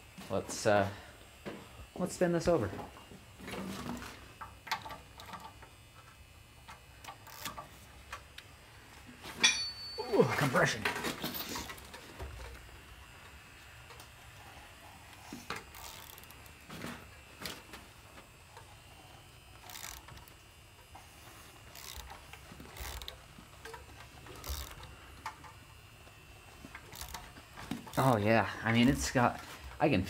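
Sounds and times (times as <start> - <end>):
ratchet wrench clicks: 6.7 - 7.6, 15.7 - 16.5, 19.6 - 20.4, 21.7 - 23.8, 24.4 - 25.4, 26.7 - 28.2.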